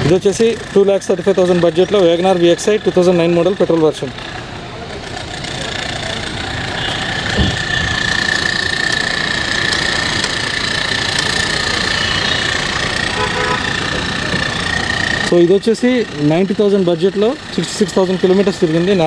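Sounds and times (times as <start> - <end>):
vehicle engine running: 0.0 - 19.0
high whine: 6.0 - 19.0
short thump: 7.3 - 7.8.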